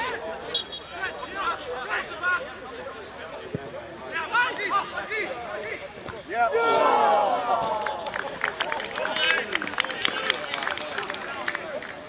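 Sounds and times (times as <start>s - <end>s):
players shouting: 4.1s - 10.9s.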